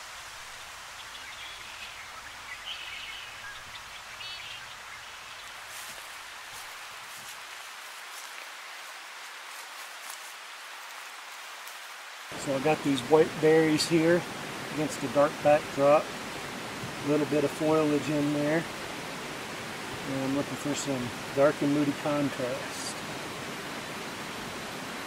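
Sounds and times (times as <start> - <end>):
faint bird chirps: 0.0 - 5.8
steady hiss: 0.0 - 25.0.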